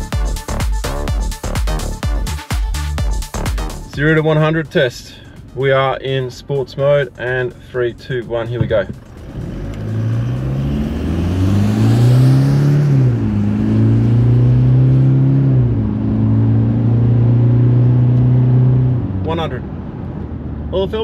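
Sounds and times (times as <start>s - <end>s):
diesel engine accelerating hard: 8.8s - 21.0s.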